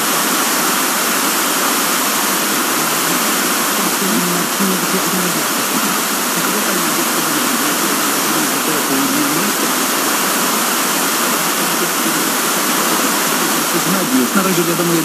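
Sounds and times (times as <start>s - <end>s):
radio static hiss: 0.0s - 15.0s
faint voice: 2.8s - 9.7s, 11.3s - 15.0s.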